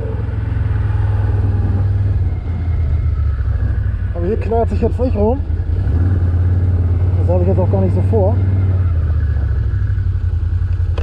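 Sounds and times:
engine running at low speed: 0:00.0 - 0:11.0.

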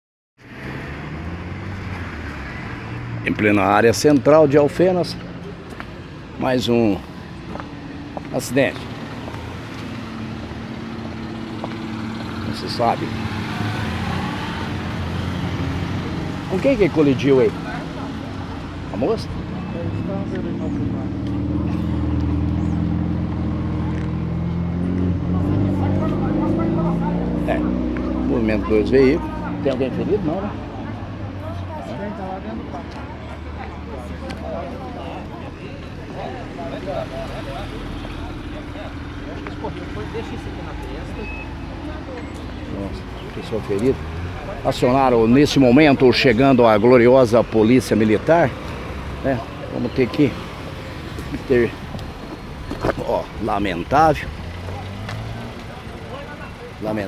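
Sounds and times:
traffic engine rumble: 0:00.4 - 0:57.0.

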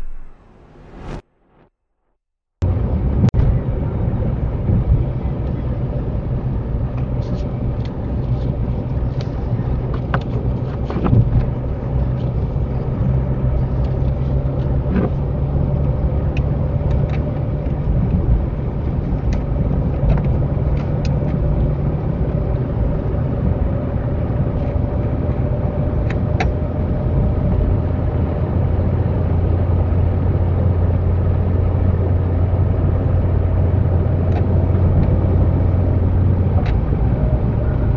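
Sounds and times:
constant low hum: 0:00.0 - 0:01.2, 0:02.6 - 0:37.9
car engine and road noise: 0:00.0 - 0:01.7, 0:02.6 - 0:37.9.

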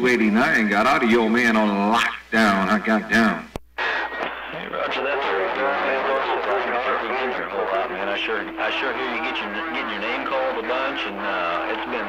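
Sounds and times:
radio static noise: 0:00.0 - 0:12.0
voice over cb radio speaker: 0:00.0 - 0:12.0.

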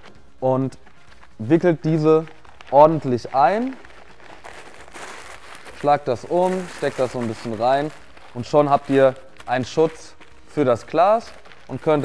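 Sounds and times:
packing paper rustling: 0:00.0 - 0:12.0.

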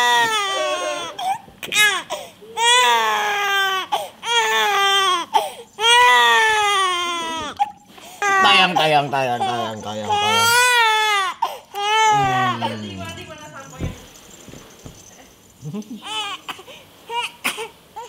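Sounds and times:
infant crying: 0:00.0 - 0:13.1, 0:16.0 - 0:18.0.

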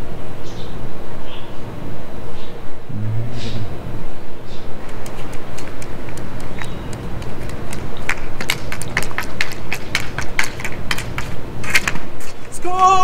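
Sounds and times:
low background noise: 0:00.0 - 0:13.0
hockey stick tapping ball on asphalt: 0:04.9 - 0:12.4.

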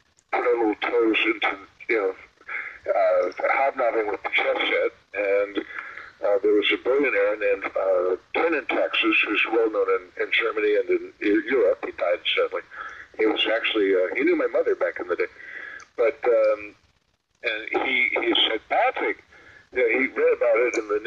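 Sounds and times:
person talking: 0:00.3 - 0:16.8, 0:17.4 - 0:21.0.

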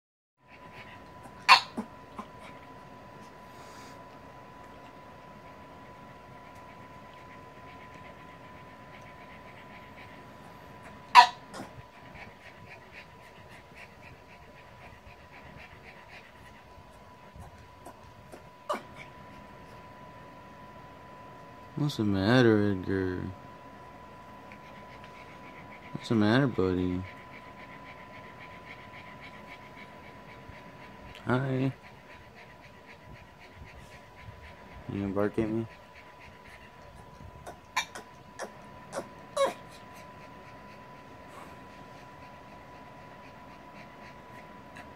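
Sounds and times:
dog panting quickly: 0:00.4 - 0:04.3, 0:04.9 - 0:19.9, 0:22.5 - 0:44.9
faint steady hum: 0:00.4 - 0:44.9.

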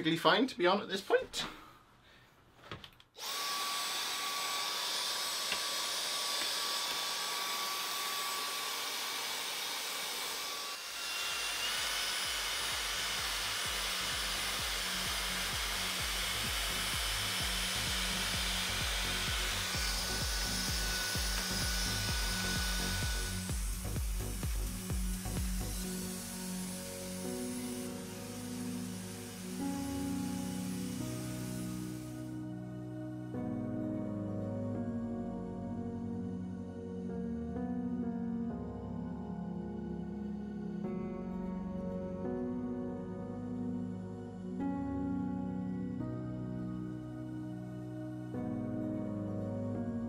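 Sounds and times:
handheld vacuum running: 0:03.2 - 0:32.4
background music: 0:11.9 - 0:50.0.

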